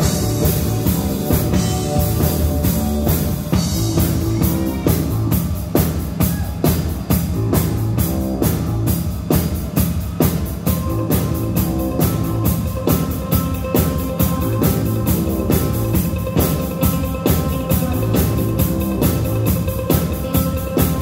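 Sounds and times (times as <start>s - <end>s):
electric guitar: 0.0s - 6.0s, 10.2s - 21.0s
bass guitar: 0.0s - 21.0s
drum kit steady beat: 0.0s - 21.0s.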